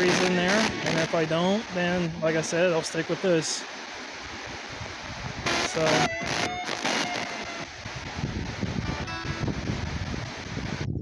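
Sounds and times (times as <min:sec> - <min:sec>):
radio static hiss: 0:00.0 - 0:10.9.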